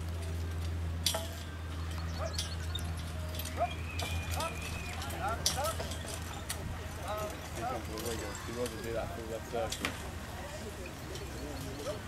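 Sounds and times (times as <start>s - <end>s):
hooves clip-clopping: 0.0s - 12.0s.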